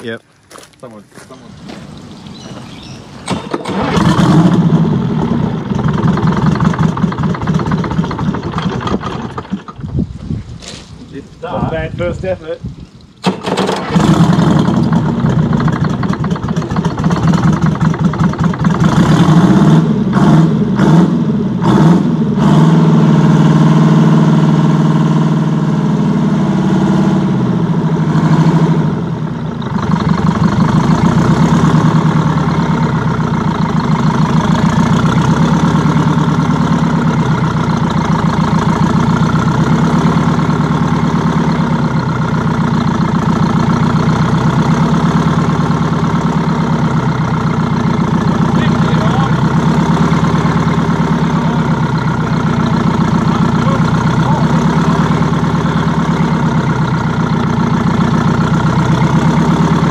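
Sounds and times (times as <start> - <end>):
diesel engine starting and revving: 1.1 - 10.6, 11.4 - 59.9.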